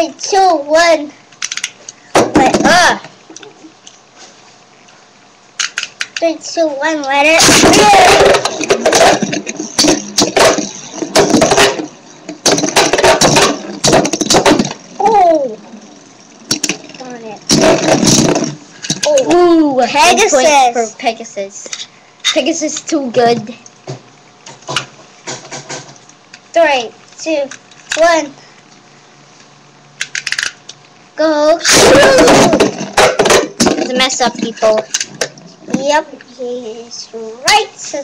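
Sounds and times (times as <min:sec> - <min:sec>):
spinning tops clacking: 0:07.4 - 0:19.2.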